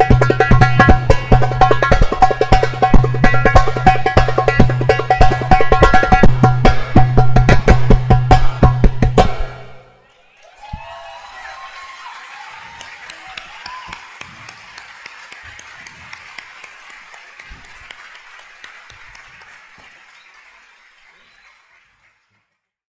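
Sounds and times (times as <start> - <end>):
voices cheering: 10.0 - 21.9
audience applauding: 10.1 - 22.7.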